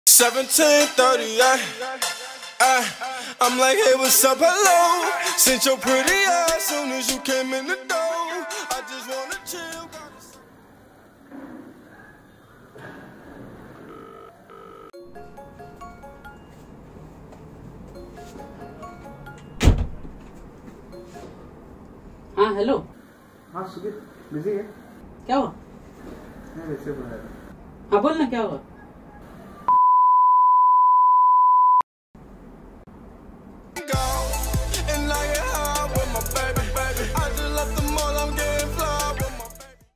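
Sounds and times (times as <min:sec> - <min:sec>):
background music: 0:00.1 - 0:10.4, 0:15.0 - 0:16.8, 0:18.0 - 0:19.6, 0:33.8 - 0:39.9
telephone ringback tone: 0:13.8 - 0:16.6
censor bleep tone: 0:29.7 - 0:31.8.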